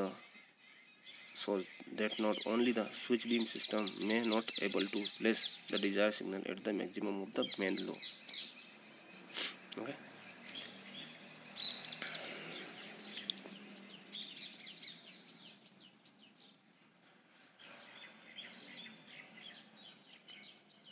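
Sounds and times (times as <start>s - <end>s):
small birds chirping: 0.0s - 20.9s.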